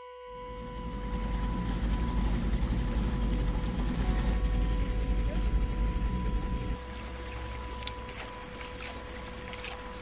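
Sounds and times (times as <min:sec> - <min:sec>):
held music tone: 0:00.0 - 0:10.0
outboard motor rumble: 0:00.0 - 0:10.0
rushing water and spray: 0:06.8 - 0:10.0.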